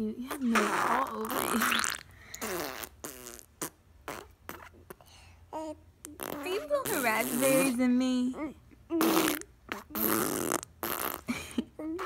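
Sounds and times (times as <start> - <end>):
baby blowing raspberries: 0.4 - 7.8, 8.9 - 11.4
baby vocal glide: 4.1 - 10.6.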